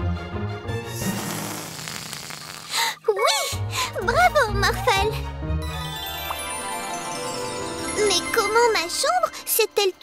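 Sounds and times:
background music: 0.0s - 1.7s, 2.8s - 10.0s.

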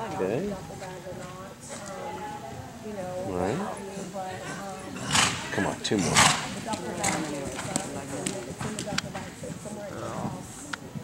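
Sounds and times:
indistinct voices talking: 0.0s - 10.8s
horse hooves cantering: 0.0s - 11.0s.

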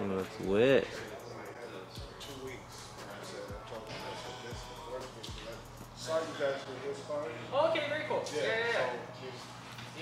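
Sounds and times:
background music: 0.0s - 7.7s
men talking and exclaiming: 0.0s - 9.1s.

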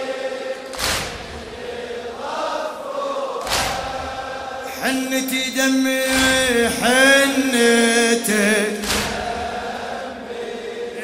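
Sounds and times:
man chanting: 4.7s - 9.1s.

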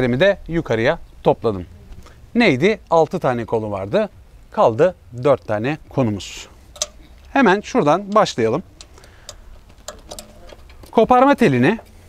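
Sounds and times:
metal hitch hardware clicking: 4.7s - 12.0s.

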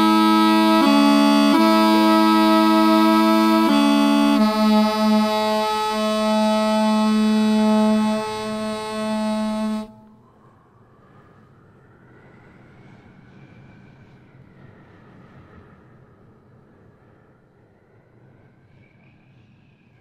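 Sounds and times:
double reed pipe playing: 0.0s - 10.1s.

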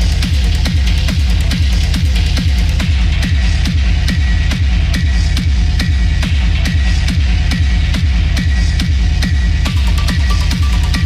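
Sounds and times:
hard techno music: 0.0s - 11.0s
heavy kick drum: 0.0s - 11.0s.

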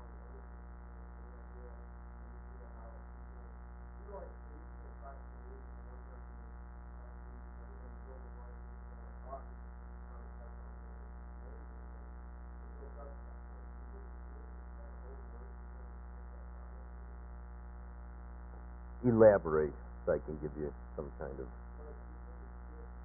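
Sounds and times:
electrical mains hum: 0.0s - 23.0s
distant person speaking: 19.0s - 22.9s.

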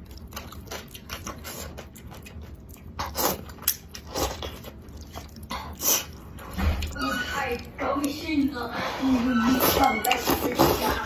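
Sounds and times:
noodles slurped and chewed: 0.0s - 11.0s.

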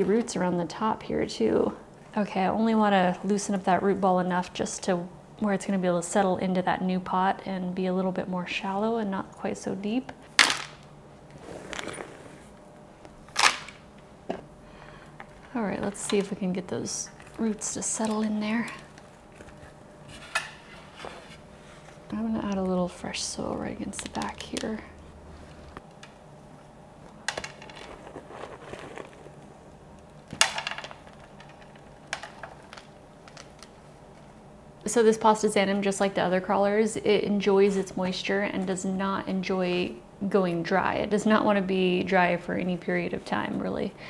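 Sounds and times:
soil and roots rustling: 27.8s - 29.5s.

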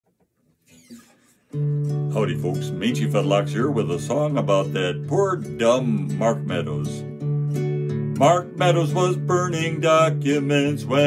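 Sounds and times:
acoustic guitar chord strummed: 1.4s - 11.0s.

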